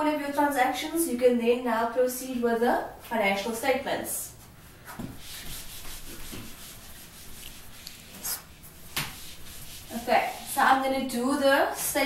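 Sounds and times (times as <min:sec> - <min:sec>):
eraser rubbing on whiteboard: 0:04.9 - 0:11.1.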